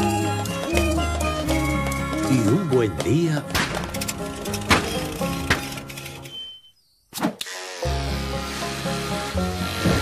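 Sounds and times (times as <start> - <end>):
background music: 0.0 - 6.5, 7.4 - 10.0
electric shears buzzing: 7.4 - 10.0.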